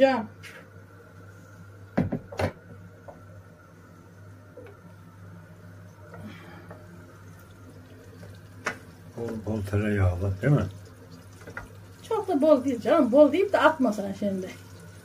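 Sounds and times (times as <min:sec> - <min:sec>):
steady low hum: 0:00.0 - 0:15.0
butter sizzling in oil: 0:06.9 - 0:15.0.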